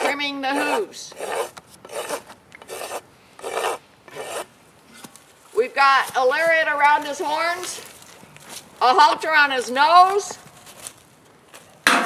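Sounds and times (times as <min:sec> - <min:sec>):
hoof rasp filing hoof: 0:00.0 - 0:05.2.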